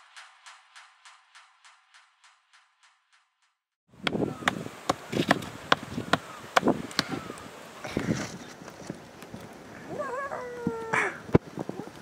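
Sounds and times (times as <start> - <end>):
child's high drawn-out call: 9.9 - 11.2.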